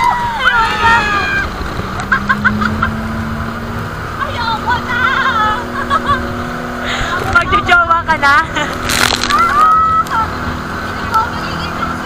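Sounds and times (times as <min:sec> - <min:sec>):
boat engine running: 0:00.0 - 0:12.0
waves splashing: 0:00.0 - 0:12.0
wind: 0:00.0 - 0:12.0.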